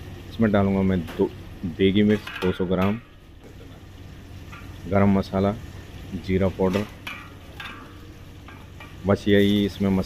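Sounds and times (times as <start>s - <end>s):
ghee sizzling in a pot: 0.0s - 10.0s.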